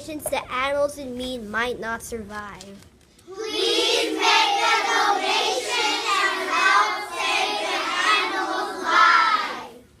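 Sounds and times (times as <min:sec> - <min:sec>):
children speaking in unison: 0:03.3 - 0:09.8.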